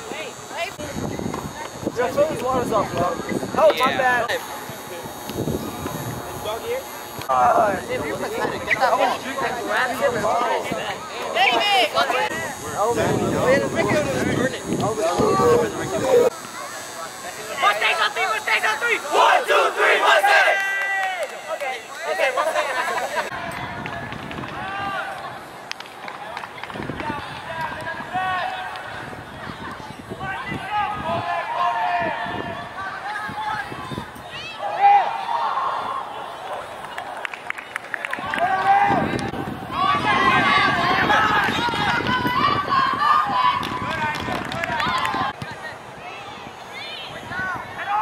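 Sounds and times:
voices yelling and shouting: 6.4s - 25.5s, 26.2s - 37.2s, 38.1s - 48.0s
team shouting together: 17.6s - 23.4s, 39.7s - 43.6s.

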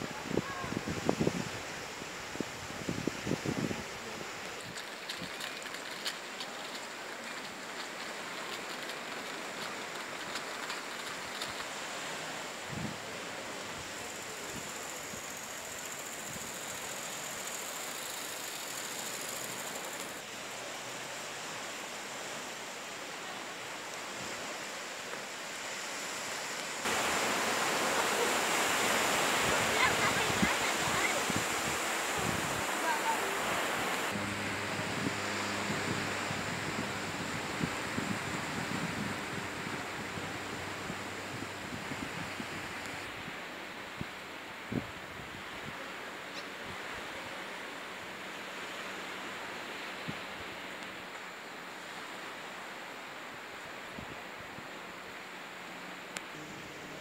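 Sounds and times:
wind noise on microphone: 0.0s - 15.4s, 26.9s - 45.9s
waves breaking on sandy beach: 0.0s - 57.0s.

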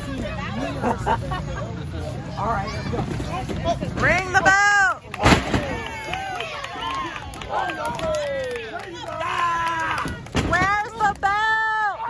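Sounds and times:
onlookers shouting: 4.4s - 12.0s.

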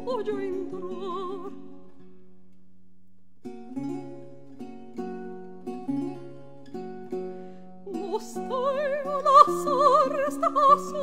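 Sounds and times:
guitar plucking chords: 3.4s - 11.0s.

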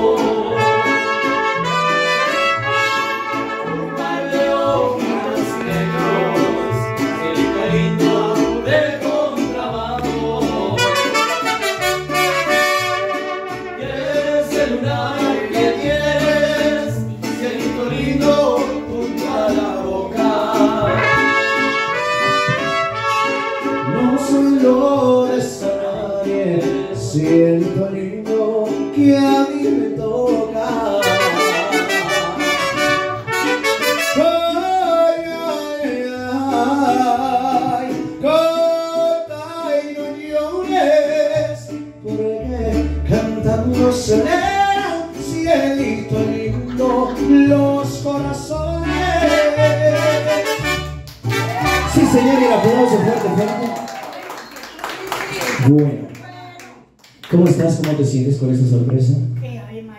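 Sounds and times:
strummed guitars: 0.0s - 55.6s
trumpets playing melody: 0.5s - 4.2s, 5.2s - 7.8s, 10.8s - 14.0s, 20.8s - 24.2s, 31.0s - 34.6s, 48.9s - 52.3s
plucked bass line: 40.4s - 50.2s.

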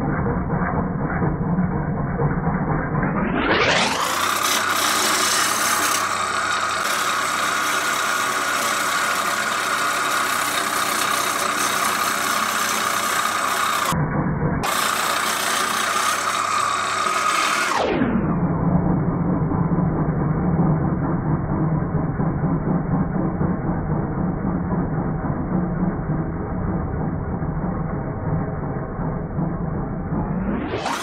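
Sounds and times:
wood lathe humming: 3.8s - 14.0s, 14.6s - 17.8s.

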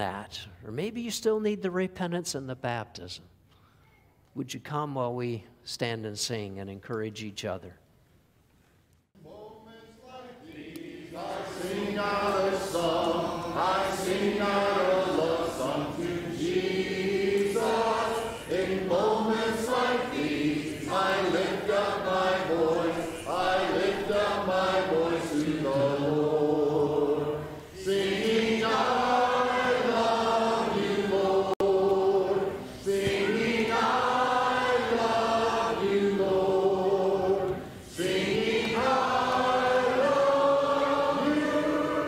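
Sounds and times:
congregation singing a hymn: 9.2s - 42.0s.

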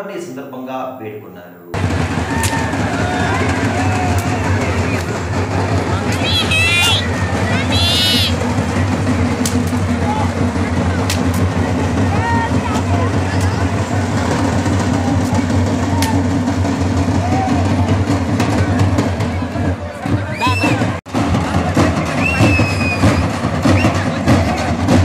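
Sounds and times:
crowd voices talking and calling: 1.2s - 25.0s
steady low rumble: 1.8s - 19.6s
shrill warbling sounds: 6.0s - 8.4s.

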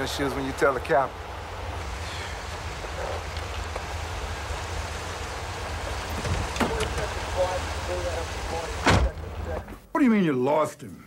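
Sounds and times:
city traffic rumble and hiss: 0.0s - 9.8s.

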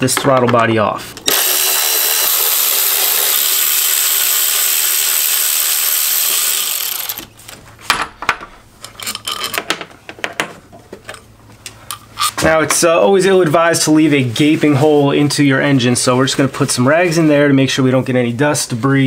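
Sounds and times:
cordless ratchet running: 1.3s - 7.3s
tools clicking and knocking: 7.9s - 11.2s.

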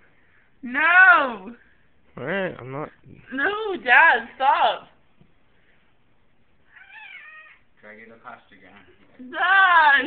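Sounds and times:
cat meowing: 6.7s - 7.7s.

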